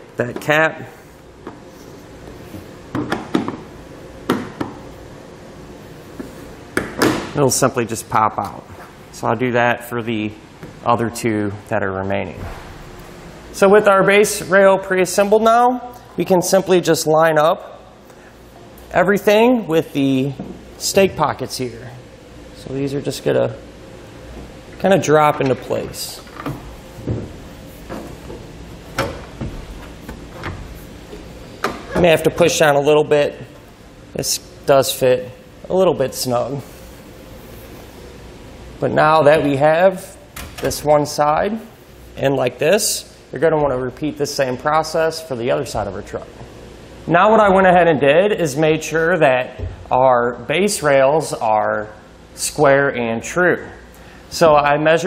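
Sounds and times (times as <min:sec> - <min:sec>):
faint room hum: 0:00.0 - 0:55.0.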